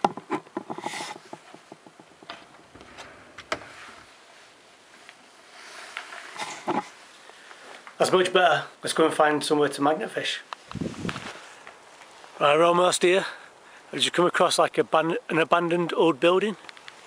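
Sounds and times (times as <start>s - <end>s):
handling knocks and clicks: 0.0s - 3.7s
clothes rustling: 0.3s - 8.0s, 10.6s - 12.4s.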